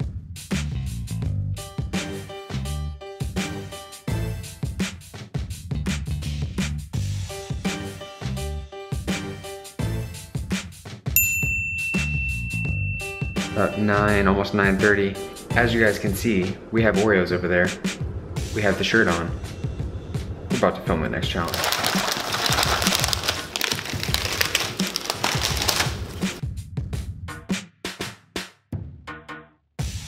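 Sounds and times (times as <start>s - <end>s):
upbeat background music: 1.6s - 11.0s, 11.9s - 16.6s
bright bell ding: 11.2s - 14.3s
plastic wrapper crinkling: 21.4s - 26.4s.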